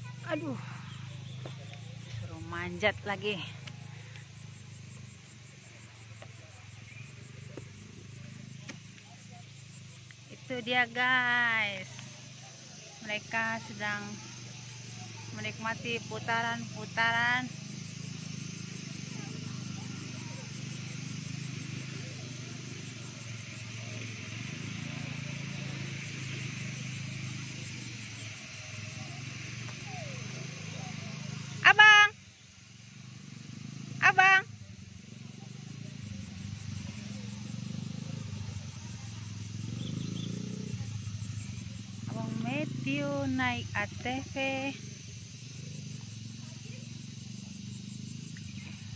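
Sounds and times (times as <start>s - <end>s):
distant atv engine running: 0.0s - 48.9s
high insect buzz: 0.0s - 48.9s.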